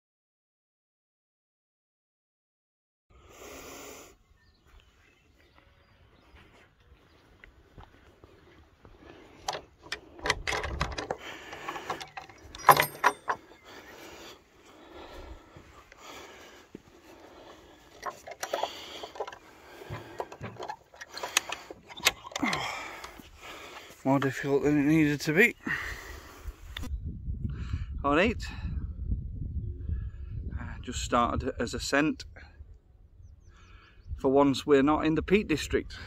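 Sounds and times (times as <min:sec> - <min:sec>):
metal chain latch clinking: 0:09.4 - 0:13.8, 0:17.9 - 0:23.2.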